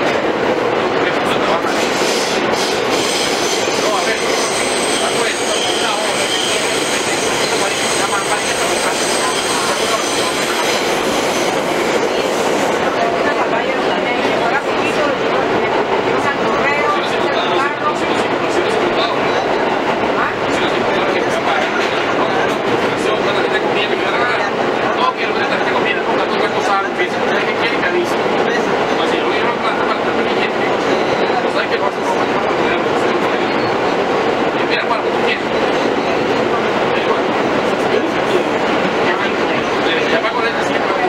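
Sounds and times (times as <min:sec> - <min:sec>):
passengers chattering: 0:00.0 - 0:41.0
train wheels on rails: 0:00.0 - 0:41.0.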